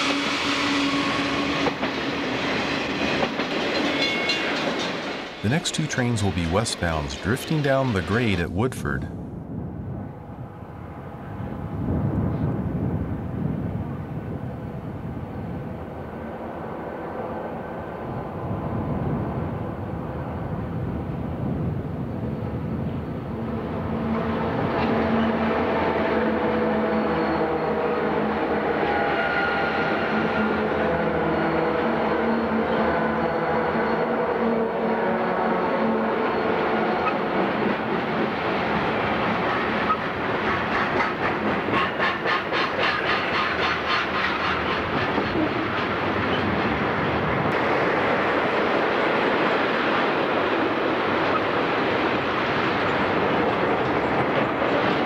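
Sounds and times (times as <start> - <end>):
locomotive whine: 0.0 - 8.6, 9.2 - 55.0
diesel locomotives rumbling: 0.0 - 55.0.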